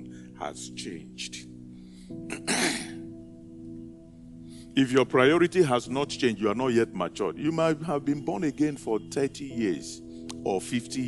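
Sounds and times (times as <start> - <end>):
soft background music: 0.0 - 11.0
man clearing his throat: 2.3 - 3.0.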